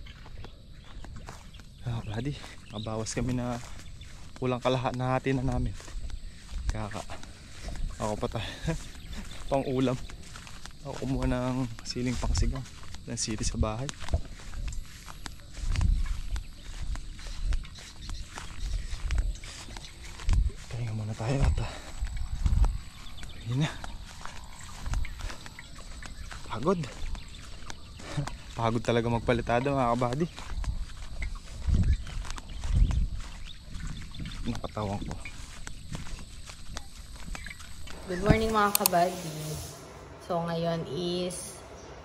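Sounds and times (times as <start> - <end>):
handheld camera rumble: 0.0 - 28.4, 30.1 - 40.2
footsteps outdoors: 0.0 - 42.0
wind buffeting microphone: 0.0 - 42.0.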